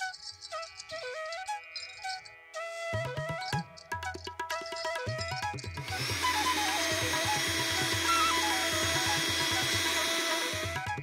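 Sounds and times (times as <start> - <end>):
instrumental background music: 0.0 - 11.0
electric mixer grinder running: 5.8 - 11.0.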